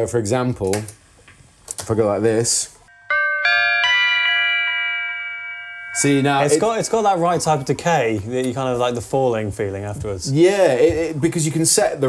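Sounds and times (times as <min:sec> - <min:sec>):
electric guitar chord ringing: 0:02.9 - 0:08.3.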